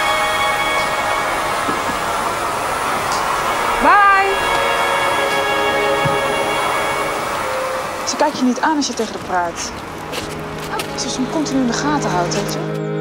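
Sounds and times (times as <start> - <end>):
vacuum cleaner running: 0.0 - 9.5.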